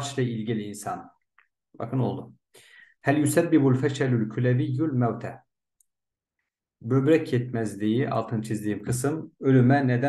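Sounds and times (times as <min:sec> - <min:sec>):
man talking: 0:00.0 - 0:01.2, 0:01.8 - 0:02.4, 0:03.0 - 0:05.5, 0:06.8 - 0:10.0.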